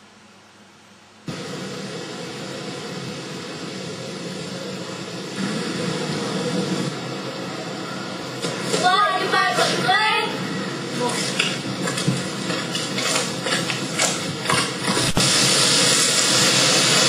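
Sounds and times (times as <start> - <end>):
steady outdoor rushing noise: 1.3 - 17.0.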